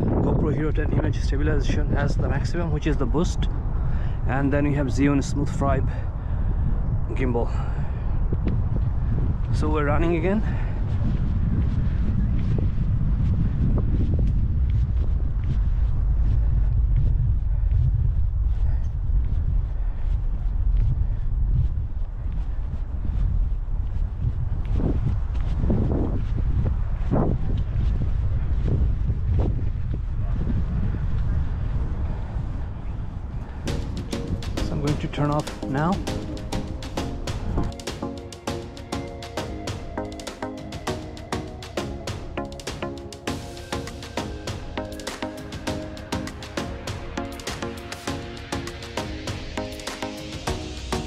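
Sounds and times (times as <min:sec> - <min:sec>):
wind buffeting microphone: 0:00.0 - 0:51.0
faint footfalls: 0:10.9 - 0:30.1
music: 0:33.7 - 0:51.0.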